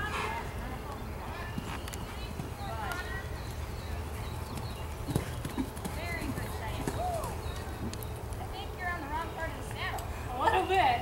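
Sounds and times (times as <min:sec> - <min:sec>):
horse hoofbeats on soft dirt: 0:00.1 - 0:09.9.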